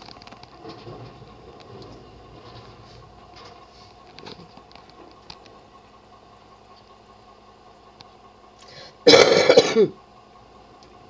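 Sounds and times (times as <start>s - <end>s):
person clearing throat: 9.0s - 10.0s.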